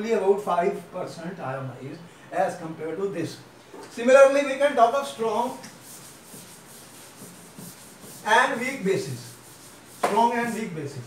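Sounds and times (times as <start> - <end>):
duster scrubbing a chalkboard: 4.8 - 11.0.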